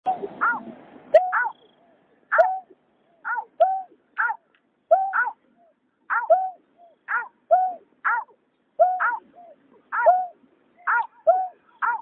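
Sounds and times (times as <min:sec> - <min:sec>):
waterbird calls: 0:00.1 - 0:12.0.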